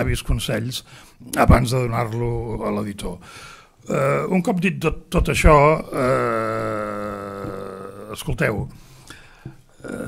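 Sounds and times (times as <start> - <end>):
man saying ehhh: 5.8 - 8.3.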